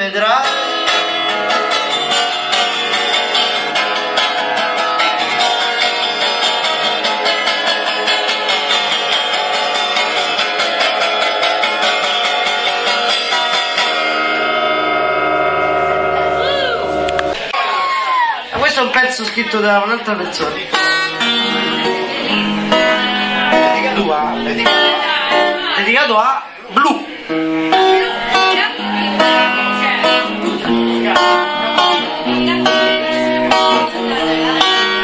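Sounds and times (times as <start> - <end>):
guitar strumming: 0.0 - 17.7, 19.1 - 35.0
guitar chord ringing: 0.4 - 17.6, 20.6 - 25.8, 27.2 - 35.0.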